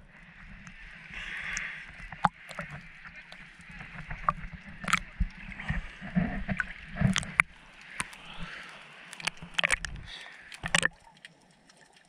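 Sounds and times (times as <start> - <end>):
seawater sloshing and gurgling: 0.0 - 11.6
water splashes: 0.0 - 12.0.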